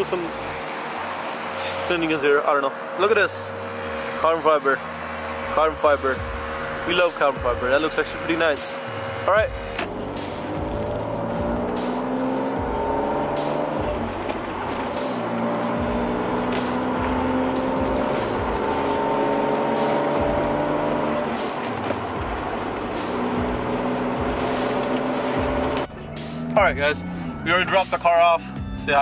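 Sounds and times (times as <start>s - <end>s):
car engine accelerating through gears: 0.0s - 27.7s.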